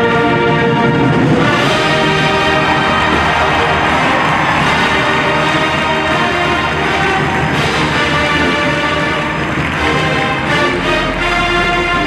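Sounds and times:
brass band playing loud music: 0.0s - 12.0s.

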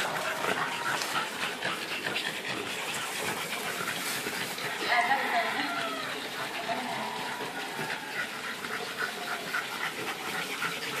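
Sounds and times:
dog panting and snorting: 0.0s - 11.0s.

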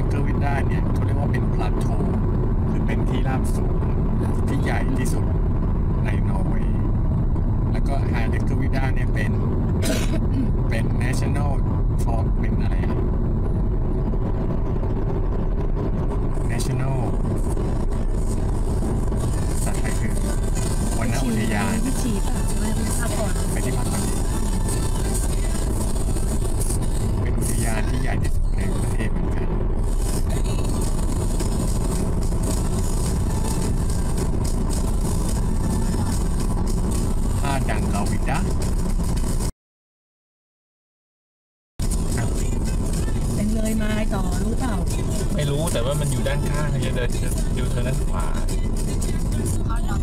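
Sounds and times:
car tyre and engine rumble: 0.0s - 39.5s, 41.8s - 50.0s.

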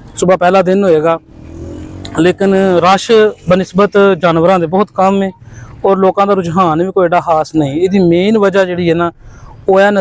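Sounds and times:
man talking: 0.0s - 1.3s, 2.1s - 10.0s
motorcycle engine speeding up: 1.2s - 4.2s.

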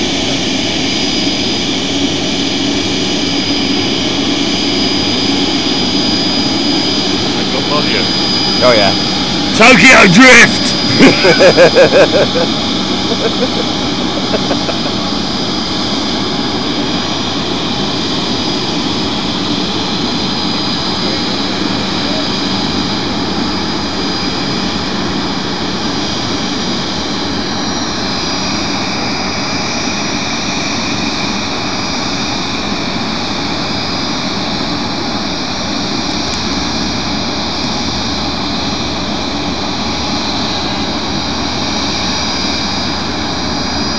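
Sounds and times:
jet engines whining: 0.0s - 43.9s.

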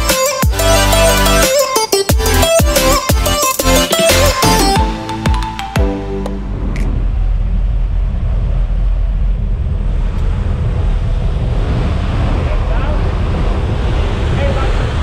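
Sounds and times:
wind rushing: 6.3s - 15.0s
wind buffeting microphone: 6.6s - 15.0s.

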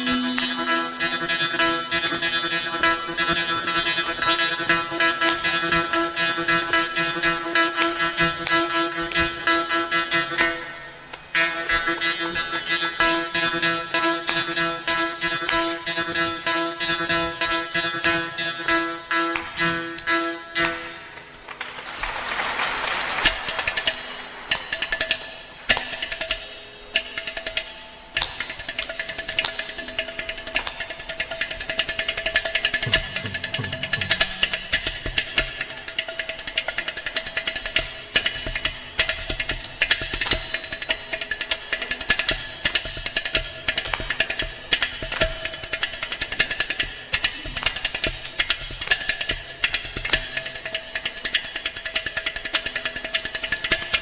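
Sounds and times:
fast percussion strokes: 20.6s - 54.0s.

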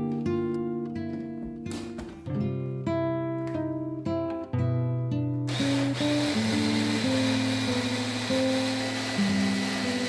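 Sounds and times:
acoustic guitar music: 0.0s - 10.0s
electric hand blender grinding nuts: 5.5s - 10.0s.

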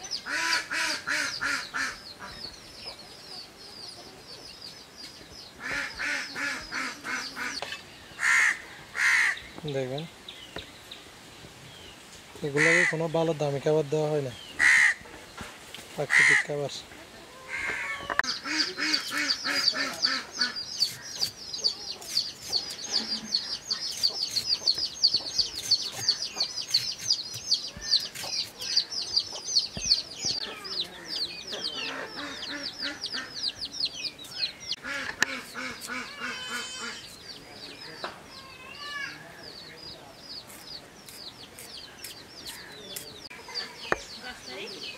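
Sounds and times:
lower coarse fowl calls: 12.5s - 13.1s, 14.5s - 15.1s, 17.3s - 21.1s.

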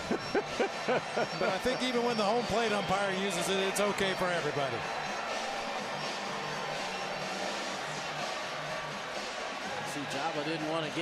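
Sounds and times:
background music: 0.0s - 11.0s
stadium crowd noise: 0.0s - 11.0s.

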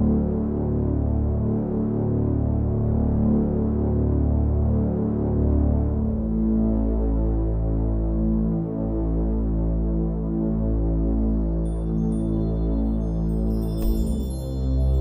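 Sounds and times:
ambient drone music: 0.0s - 15.0s
high bell-like tones: 11.7s - 15.0s.

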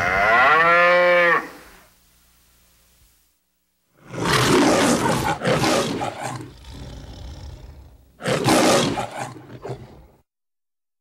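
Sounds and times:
lion growling: 4.0s - 10.2s
lion roaring: 4.0s - 10.2s.

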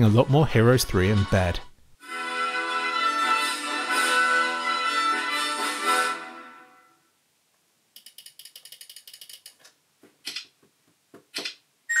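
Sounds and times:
music: 0.0s - 7.0s
computer mouse clicks: 8.0s - 10.5s, 11.3s - 11.6s.

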